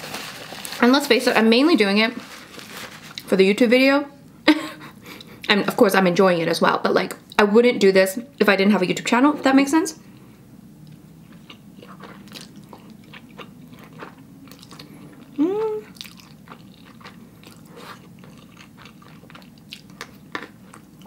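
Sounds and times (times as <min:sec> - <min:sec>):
person chewing noodles: 0:10.9 - 0:21.0
person humming mm: 0:15.3 - 0:16.0.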